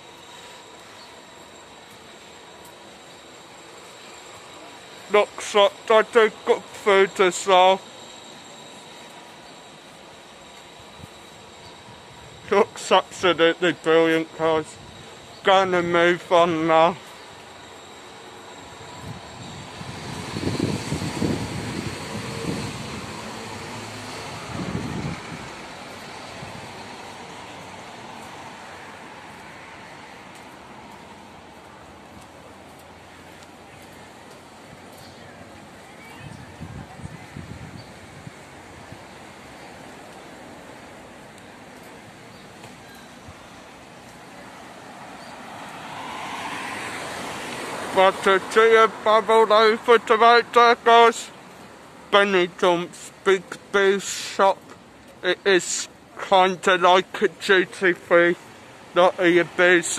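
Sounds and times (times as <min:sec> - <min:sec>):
street noise: 0:00.0 - 0:59.9
road vehicle passing: 0:19.4 - 0:59.9
car tyre and engine noise: 0:37.4 - 0:59.9.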